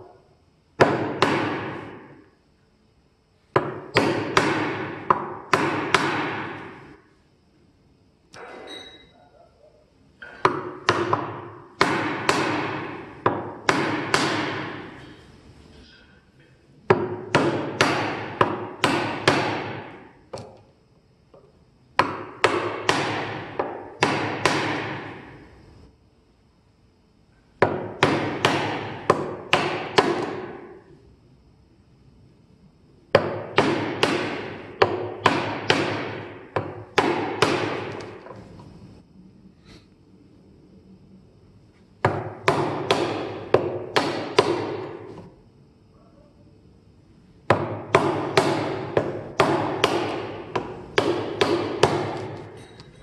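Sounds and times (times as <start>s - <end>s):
hammer striking chisel into wood: 0.8s - 2.1s, 3.5s - 6.9s, 10.2s - 15.0s, 16.9s - 20.5s, 22.0s - 25.3s, 27.6s - 30.7s, 33.1s - 38.2s, 42.0s - 45.2s, 47.5s - 52.9s
hammer striking chisel handle: 10.2s - 14.8s, 47.5s - 53.0s.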